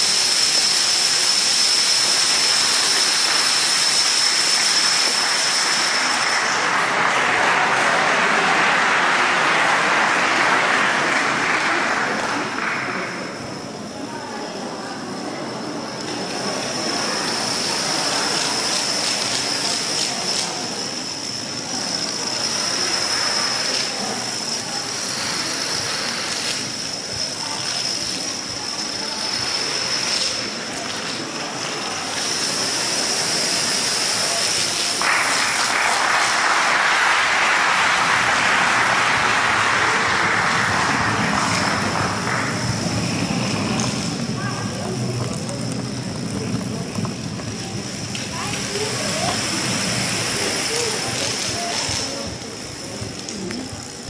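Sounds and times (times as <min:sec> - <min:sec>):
plastic dominoes toppling: 0:17.2 - 0:20.7, 0:29.3 - 0:53.8.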